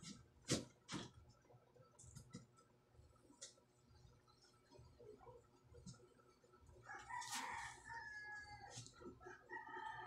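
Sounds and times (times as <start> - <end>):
faint rooster crowing: 6.8 - 10.0.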